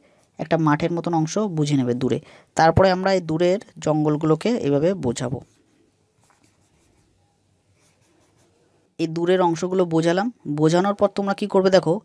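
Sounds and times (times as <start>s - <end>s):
pencil scratching on paper: 4.3s - 8.8s.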